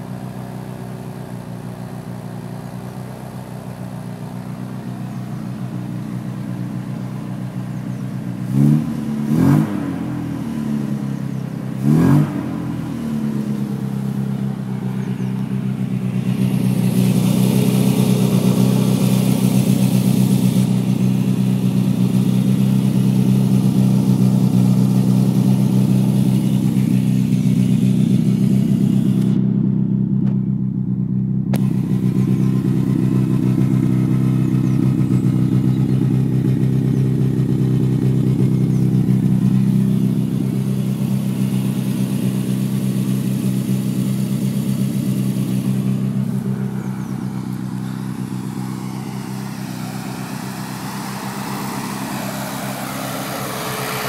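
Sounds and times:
car engine running steadily: 0.0 - 54.0.

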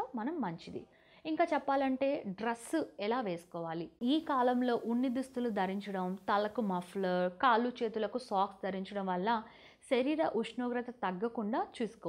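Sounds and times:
woman talking: 0.0 - 12.0.

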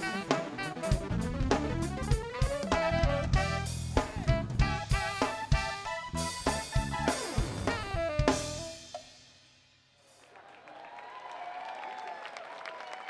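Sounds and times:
live funk band playing: 0.0 - 9.2.

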